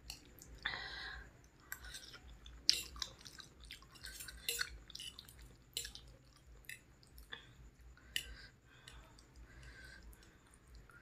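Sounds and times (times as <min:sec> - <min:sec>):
person chewing noodles: 0:00.0 - 0:08.6.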